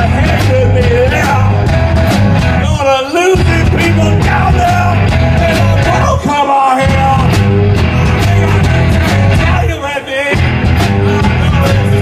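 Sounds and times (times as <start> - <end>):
bass guitar: 0.0 - 12.0
drums: 0.0 - 12.0
electric guitars: 0.0 - 12.0.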